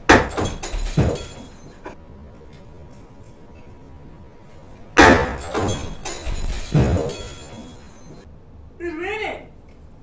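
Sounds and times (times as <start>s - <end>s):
clattering: 5.3s - 8.2s.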